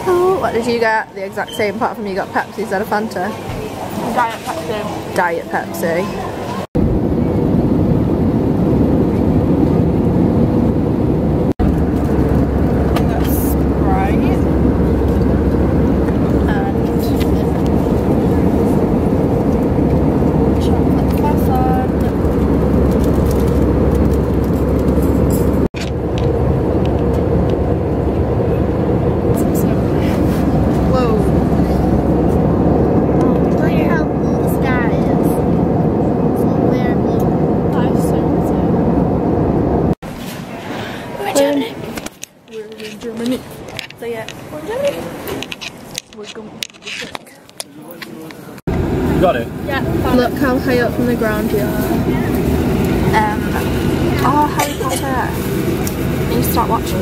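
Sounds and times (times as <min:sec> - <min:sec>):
airliner cabin engine rumble: 0:00.0 - 0:57.0.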